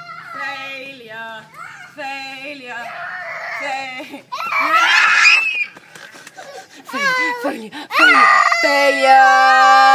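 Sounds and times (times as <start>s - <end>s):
woman and toddler shrieking: 4.3s - 5.8s, 6.9s - 9.9s.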